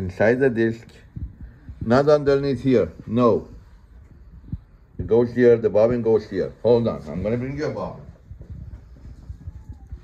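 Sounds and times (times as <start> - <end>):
soft low thumps: 8.1 - 10.0.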